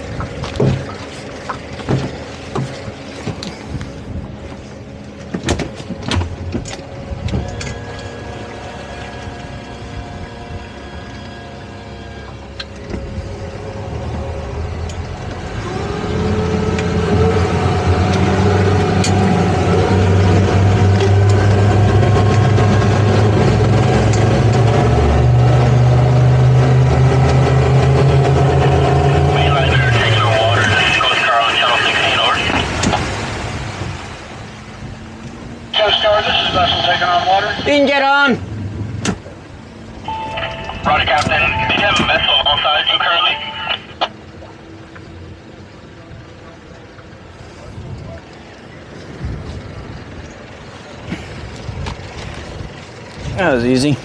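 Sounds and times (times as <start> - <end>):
outboard engines running: 0.0 - 54.0.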